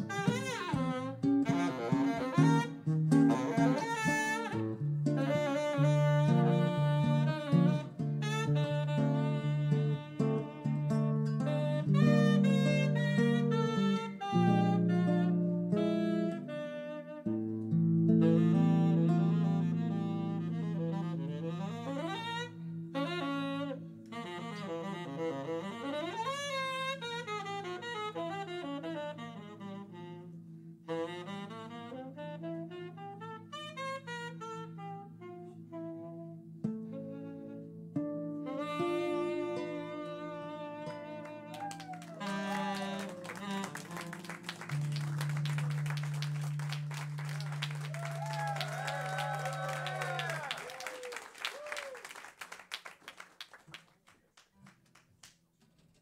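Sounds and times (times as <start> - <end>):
acoustic guitar accompaniment: 0.0 - 16.5, 17.3 - 24.6, 33.2 - 48.2
saxophone playing jazz melody: 0.0 - 52.4.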